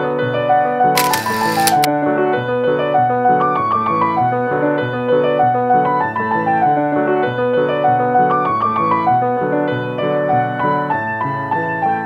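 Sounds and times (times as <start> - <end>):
camera shutter sound effect: 1.0 - 1.9.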